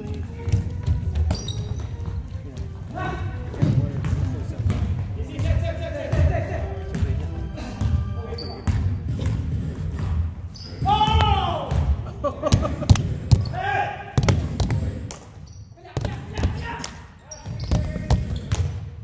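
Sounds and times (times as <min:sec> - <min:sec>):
sneaker squeaks: 0:00.0 - 0:04.3, 0:06.8 - 0:11.2, 0:15.3 - 0:16.6, 0:17.2 - 0:18.8
basketball bouncing on wooden floor: 0:00.1 - 0:02.8, 0:03.4 - 0:07.2, 0:08.6 - 0:13.5, 0:14.2 - 0:14.9, 0:17.4 - 0:18.9.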